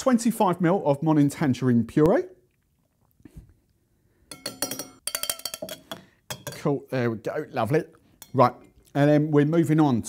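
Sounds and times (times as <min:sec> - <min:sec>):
metal jigger clinking on shaker: 0:04.3 - 0:06.7.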